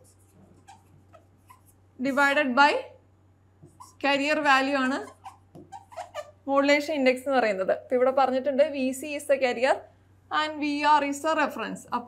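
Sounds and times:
marker writing on whiteboard: 0.0s - 2.3s, 3.6s - 6.2s.

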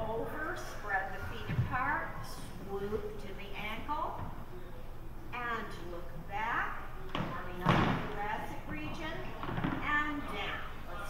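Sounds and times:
woman speaking: 0.0s - 4.3s, 5.3s - 10.8s.

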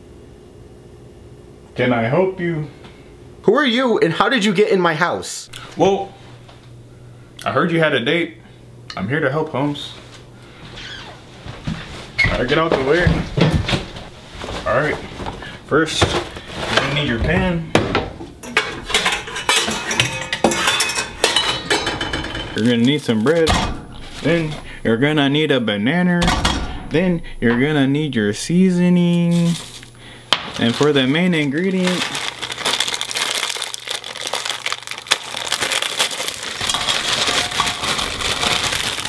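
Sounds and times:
cookware clanking: 18.4s - 22.7s
wrapper crinkling: 22.6s - 23.5s, 29.1s - 39.0s.

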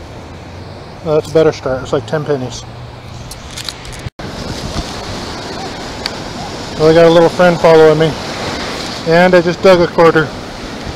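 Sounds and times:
ocean surf: 0.0s - 10.9s
wind noise: 2.7s - 10.9s.

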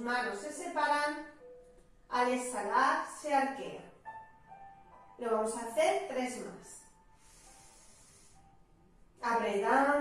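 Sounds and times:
soft breath hiss: 6.9s - 8.9s.

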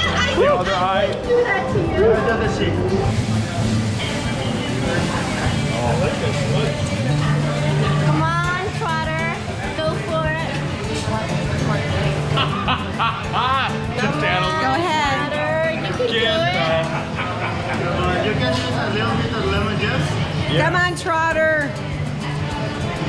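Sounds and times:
people laughing: 0.0s - 2.8s, 12.2s - 18.5s
background music with bass line: 0.0s - 23.0s.

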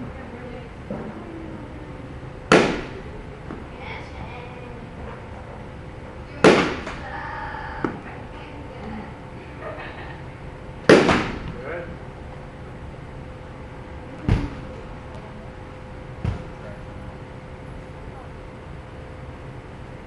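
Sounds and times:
bat striking ball: 2.5s - 3.6s, 6.4s - 7.1s, 10.9s - 11.6s.

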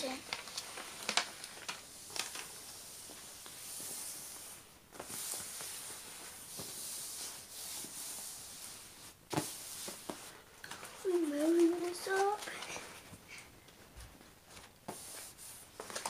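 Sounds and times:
hands rubbing cover sheet: 0.0s - 13.1s, 14.4s - 16.0s.

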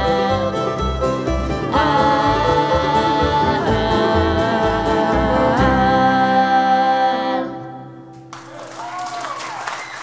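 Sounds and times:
fiddle: 0.0s - 6.4s
upright bass: 0.0s - 7.9s
banjo: 0.0s - 8.0s
acoustic guitar: 0.0s - 8.5s.

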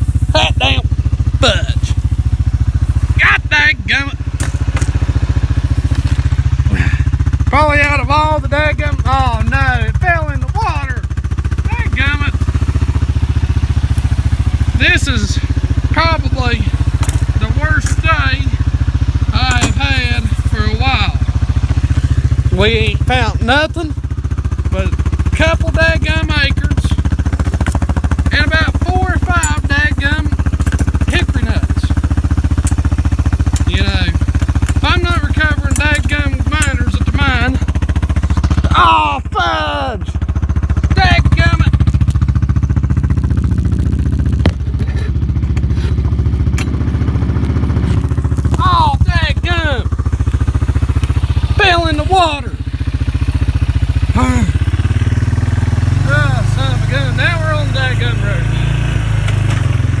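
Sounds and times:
atv engine running: 0.0s - 60.0s.

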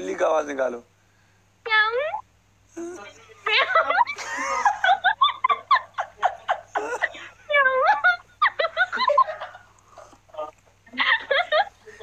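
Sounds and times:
people laughing: 3.2s - 12.0s.

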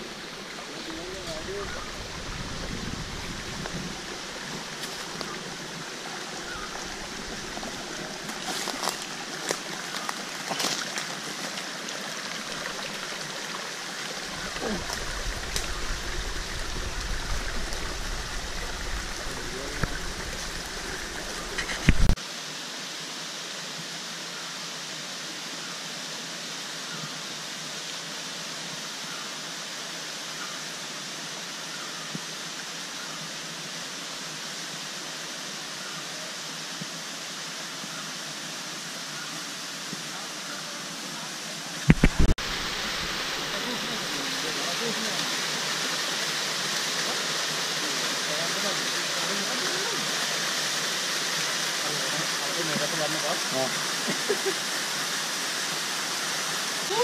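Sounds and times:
small waterfall splashing: 0.0s - 57.0s
stream running over rocks: 0.0s - 57.0s.

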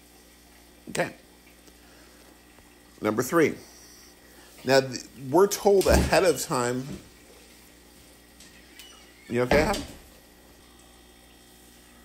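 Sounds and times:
light electrical hum: 0.0s - 12.0s
low hiss: 0.0s - 12.0s.

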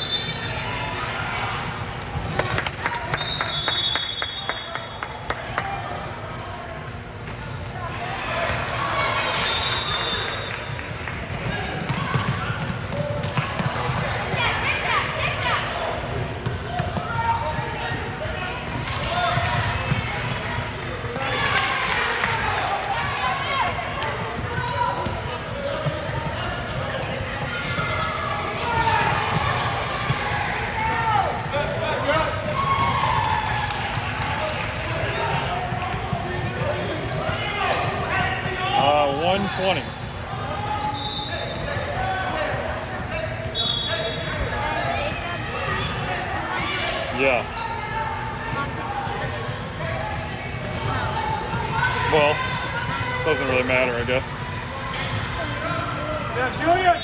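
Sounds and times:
echoing chatter and calls: 0.0s - 57.0s.

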